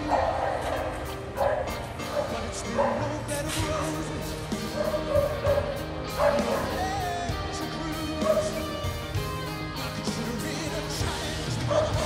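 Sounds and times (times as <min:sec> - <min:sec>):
dog barking excitedly: 0:00.0 - 0:03.1, 0:04.6 - 0:07.0, 0:08.2 - 0:08.6, 0:11.6 - 0:12.0
music playing: 0:00.0 - 0:12.0.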